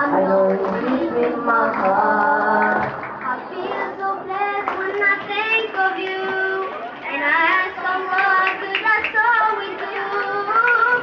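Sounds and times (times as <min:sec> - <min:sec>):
boys singing through a pa: 0:00.0 - 0:11.0.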